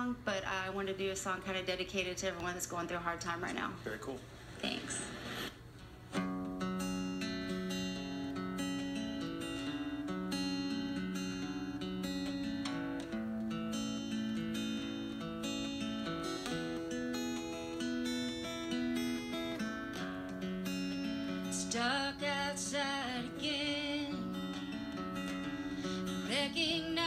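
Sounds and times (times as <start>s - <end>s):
acoustic guitar picking: 5.6s - 27.0s.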